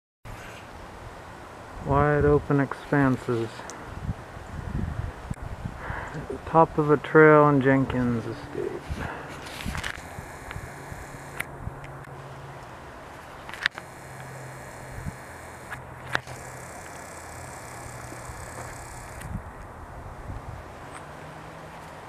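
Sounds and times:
steady low hum: 7.9s - 12.3s, 13.3s - 20.4s.

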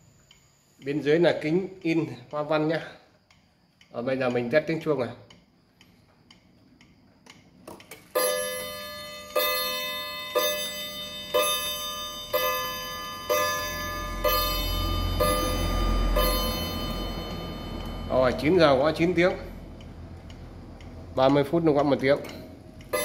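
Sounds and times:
clock ticking: 0.0s - 23.0s
clock striking on gongs: 8.2s - 19.4s.

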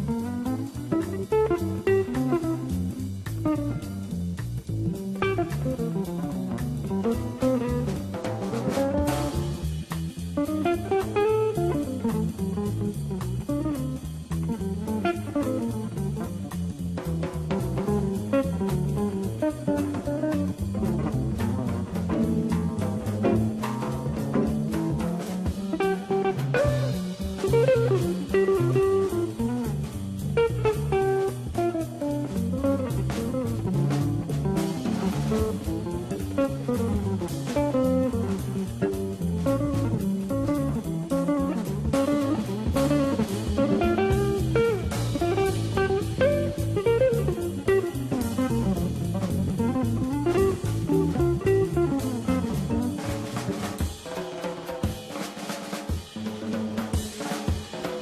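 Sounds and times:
double bass: 0.0s - 53.8s
drum kit with cymbals: 0.0s - 58.0s
jazz electric guitar solo: 0.0s - 58.0s.

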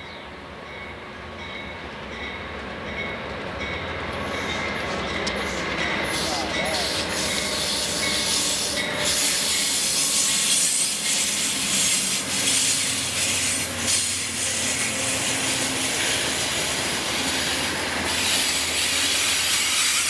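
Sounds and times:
diesel train passing: 0.0s - 20.0s
high brake squeal: 6.1s - 16.2s
hiss of rolling wheels: 6.1s - 20.0s.

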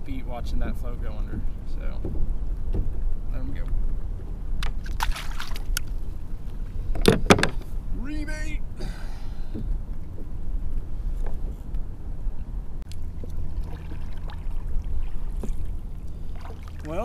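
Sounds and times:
wind buffeting microphone: 0.0s - 17.0s
faint knocks from kayak: 1.2s - 3.2s, 6.9s - 7.7s, 9.4s - 10.4s, 11.1s - 11.8s, 15.3s - 15.7s.

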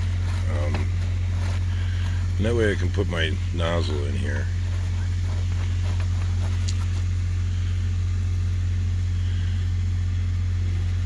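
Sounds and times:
engine idling hum: 0.0s - 11.0s.

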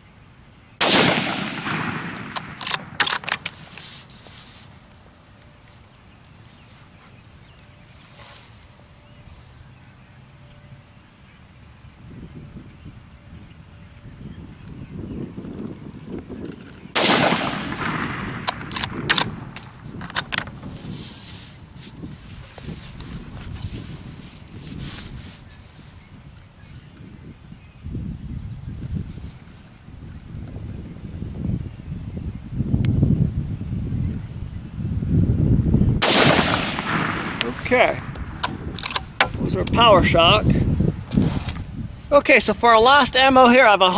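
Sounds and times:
rifle bolt clicks: 0.8s - 3.6s, 16.4s - 20.5s, 36.0s - 39.8s
rifle shot with echo: 0.8s - 3.7s, 16.9s - 20.4s, 36.0s - 39.4s.

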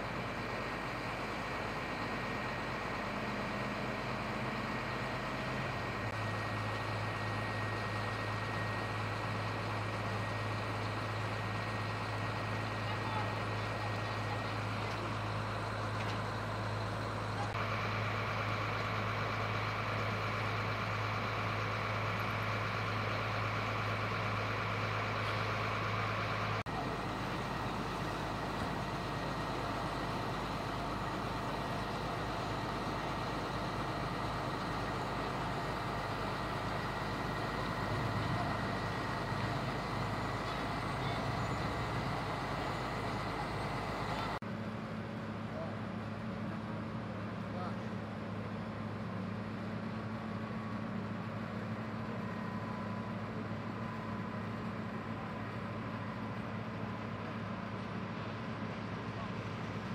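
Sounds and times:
fire engine motor humming: 0.0s - 59.9s.

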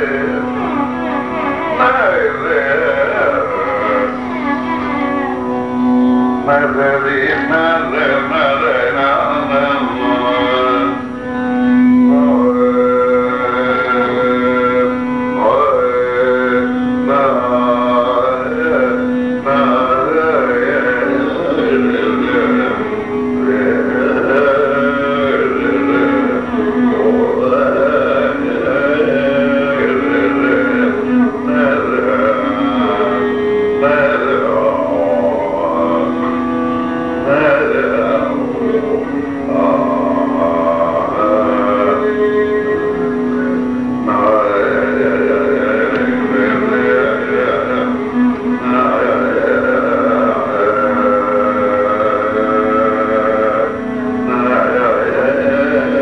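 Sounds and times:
steady drone: 0.0s - 56.0s.

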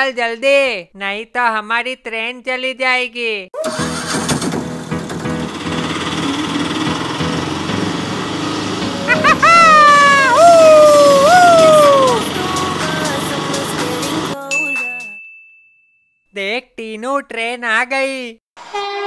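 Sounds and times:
auto-rickshaw engine running: 3.6s - 14.4s
high sliding cry: 9.0s - 13.0s.

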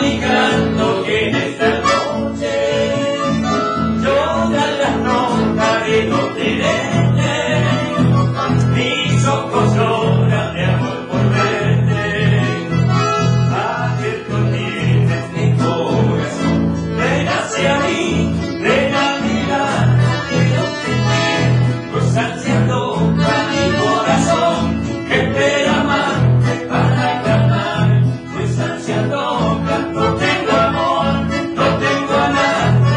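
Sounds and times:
accordion: 0.0s - 32.9s
acoustic guitars: 0.0s - 32.9s.

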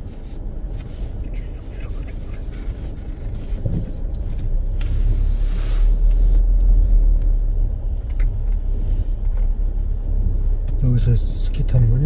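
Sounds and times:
car rumbling on snowy road: 0.0s - 12.0s.

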